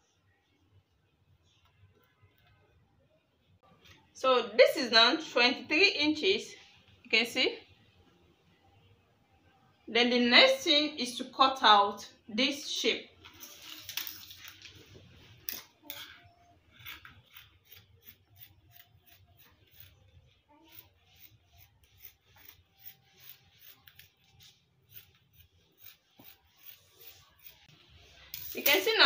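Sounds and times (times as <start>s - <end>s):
scissors snipping fabric: 16.8s - 20.0s, 20.7s - 27.6s.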